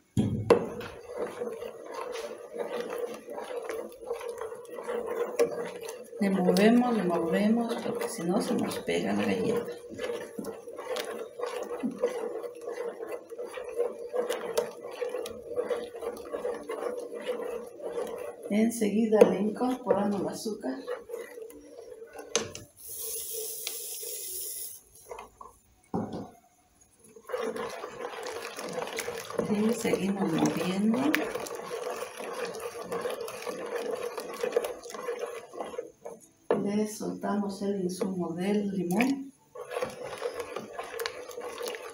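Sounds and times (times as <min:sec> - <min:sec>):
spoon scraping a metal pot: 0:00.5 - 0:25.6, 0:27.1 - 0:41.9.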